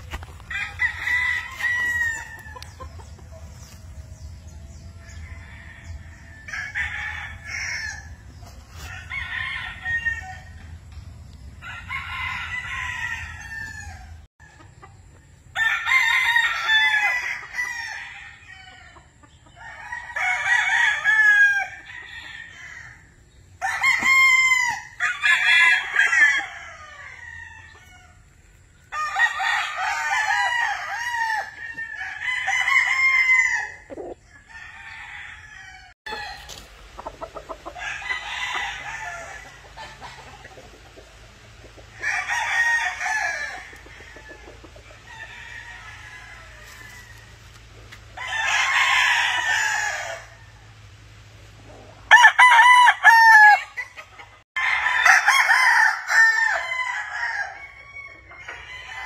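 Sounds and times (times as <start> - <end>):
roosters crowing: 0.0 - 59.0.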